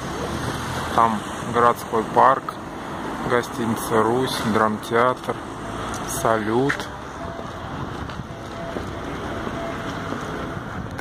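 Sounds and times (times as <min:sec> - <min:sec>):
city street noise: 0:00.0 - 0:11.0
wind rumbling on microphone: 0:07.2 - 0:11.0.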